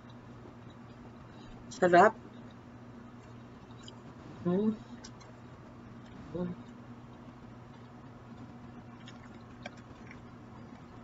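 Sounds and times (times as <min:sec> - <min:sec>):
chewing peanuts: 0:07.7 - 0:11.0.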